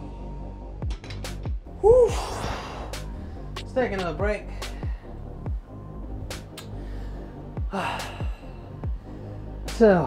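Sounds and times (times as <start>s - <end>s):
man breathing heavily: 2.1s - 3.6s, 4.4s - 9.7s.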